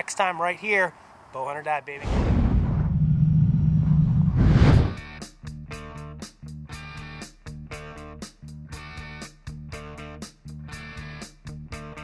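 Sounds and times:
deep cinematic rumble: 2.0 - 5.1
whoosh: 2.0 - 5.1.

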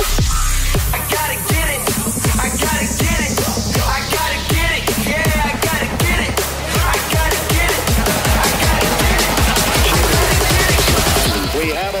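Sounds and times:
wavering pitched synth sounds: 0.0 - 11.9
electronic dance music: 0.0 - 12.0
fast kick drum hits: 0.8 - 11.4.

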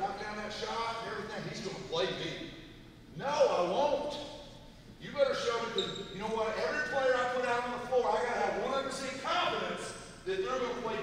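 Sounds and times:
man talking in echoing hall: 0.0 - 11.0.

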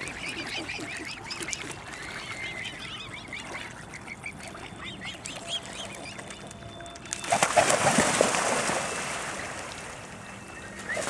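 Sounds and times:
water splashing: 3.3 - 10.2.

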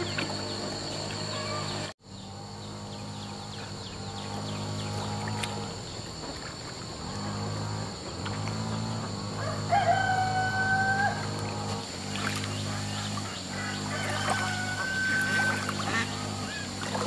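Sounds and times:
rooster crowing: 9.3 - 11.4, 13.6 - 15.7.

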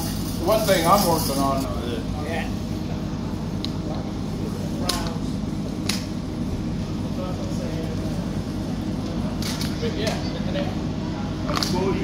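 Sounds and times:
faint voices: 0.0 - 12.0
low mechanical hum: 0.0 - 12.0.

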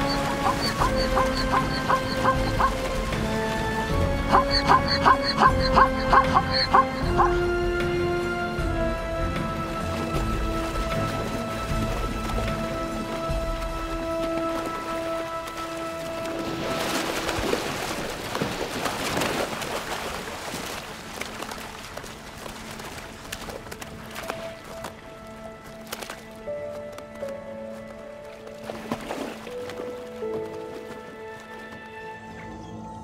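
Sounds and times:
river rapids rushing and splashing: 0.0 - 8.5
background music with held notes: 0.0 - 18.6, 20.7 - 33.0.

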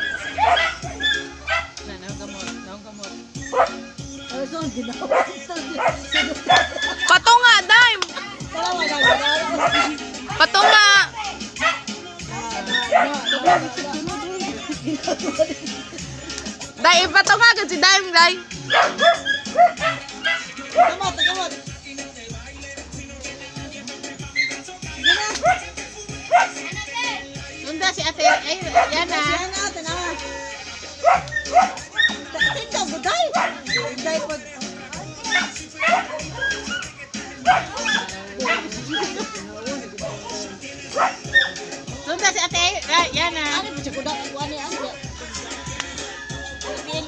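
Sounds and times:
dog barking and yelping: 0.0 - 1.8, 3.3 - 3.9, 4.9 - 15.5, 18.2 - 21.7, 24.2 - 26.9, 28.2 - 29.6, 30.9 - 34.5, 35.1 - 41.8, 46.0 - 47.0
music playing: 0.0 - 47.0.

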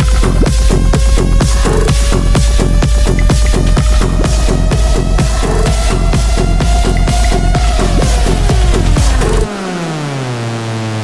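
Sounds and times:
techno kick drum: 0.0 - 9.5
buzzy electronic tone sliding down: 0.0 - 11.0.

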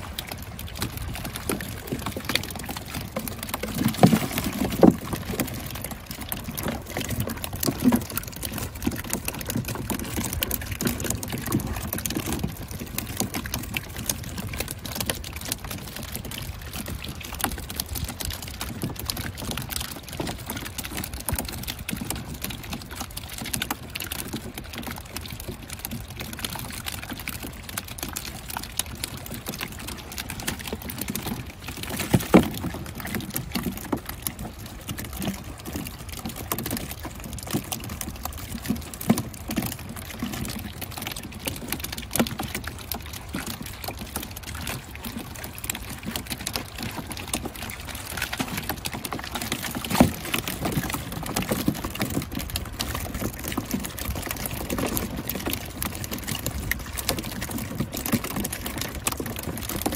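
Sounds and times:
shallow water sloshing: 0.0 - 59.9.

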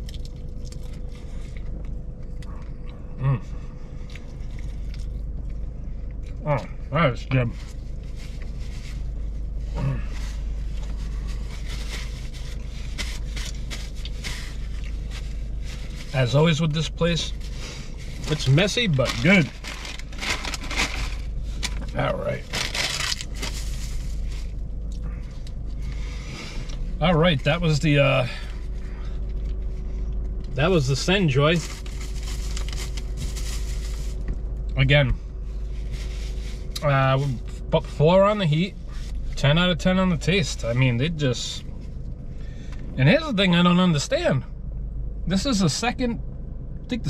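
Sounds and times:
chewing crispy food: 0.0 - 3.2, 3.9 - 6.4, 10.7 - 16.0
low hum inside car: 0.0 - 47.0
paper napkin crinkling: 17.3 - 24.5, 31.5 - 34.2.

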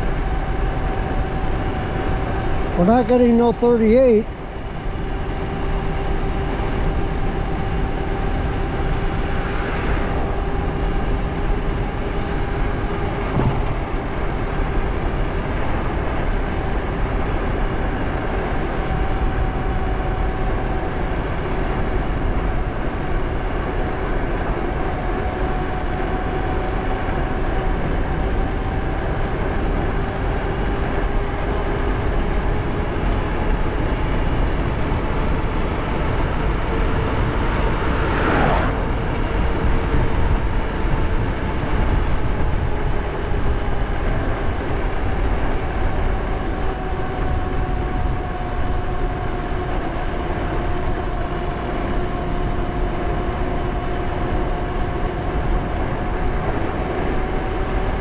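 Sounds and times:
electric bike motor whine: 0.0 - 2.8, 4.3 - 58.0
wind rush on microphone: 4.3 - 58.0
tyre noise on road: 4.8 - 58.0.

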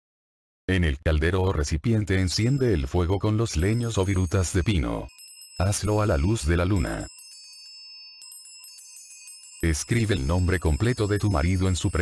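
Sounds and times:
light tinkling: 2.3 - 12.0
ringing bell tones: 2.3 - 12.0.

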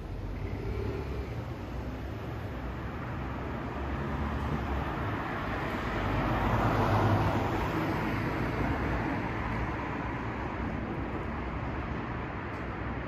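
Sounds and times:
vehicle passing: 0.0 - 12.4.

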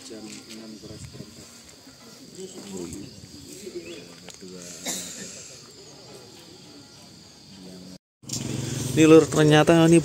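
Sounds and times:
faint distant voices: 0.0 - 8.0
outdoor background noise: 0.0 - 10.0.

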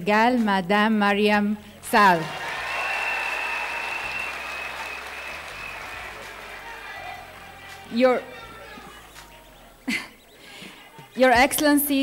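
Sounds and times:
audience applauding: 2.2 - 7.9.

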